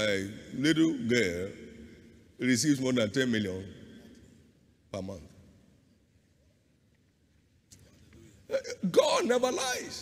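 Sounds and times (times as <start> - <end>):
man speaking loudly: 8.5 - 10.0.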